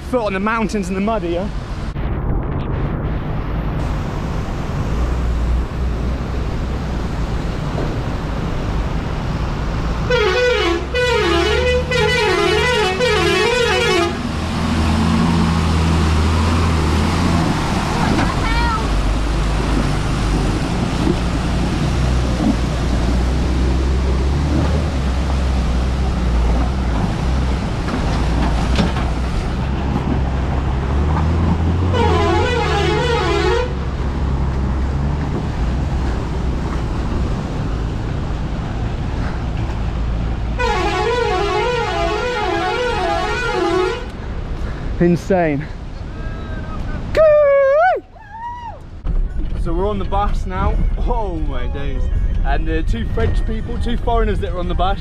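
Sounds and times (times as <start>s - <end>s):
bus engine rumbling: 0.0s - 55.0s
bus horn warbling: 10.1s - 14.3s, 31.8s - 33.8s, 40.6s - 44.2s.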